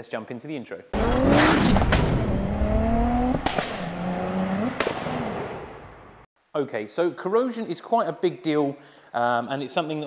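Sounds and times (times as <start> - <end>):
gear change crack: 1.0 - 4.0
car engine accelerating: 1.0 - 5.6.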